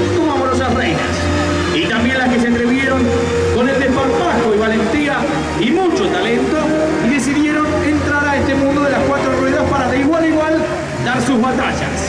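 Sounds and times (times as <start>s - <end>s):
voice over loudspeaker: 0.0s - 12.0s.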